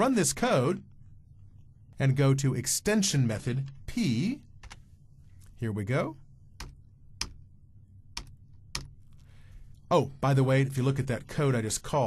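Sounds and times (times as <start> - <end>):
computer keystrokes: 4.6 - 4.8, 6.6 - 7.4, 8.1 - 9.0.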